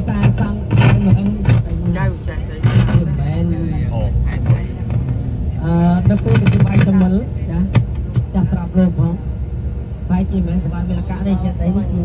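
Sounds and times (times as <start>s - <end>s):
vehicle drone from inside: 0.0s - 12.0s.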